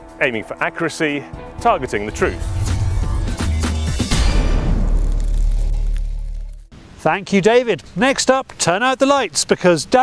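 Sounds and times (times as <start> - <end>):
deep bass note music sting: 1.7 - 6.6.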